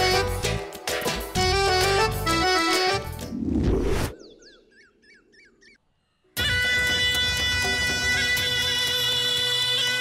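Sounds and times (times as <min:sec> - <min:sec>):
swooping bird chirps: 0:04.1 - 0:06.2.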